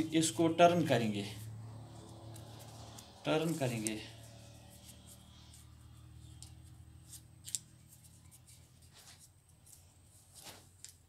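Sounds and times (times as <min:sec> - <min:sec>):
paper being folded and creased: 0:06.2 - 0:11.0.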